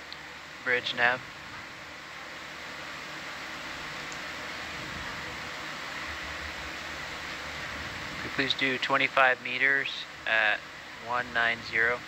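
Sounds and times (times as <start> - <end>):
radio static hiss: 0.0 - 12.0.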